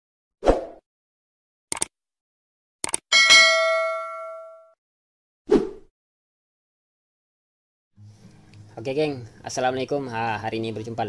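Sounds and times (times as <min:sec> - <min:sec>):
bright metallic ding: 0:03.1 - 0:04.8.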